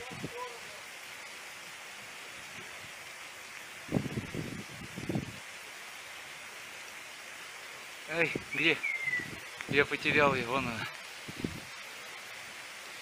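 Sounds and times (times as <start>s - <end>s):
steady outdoor hiss: 0.0s - 13.0s.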